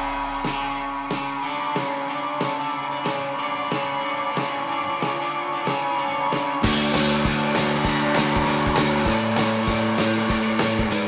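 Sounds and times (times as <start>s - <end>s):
steady drum beat: 0.0s - 5.8s, 6.4s - 11.0s
bass guitar: 0.0s - 11.0s
electric guitars: 0.0s - 11.0s.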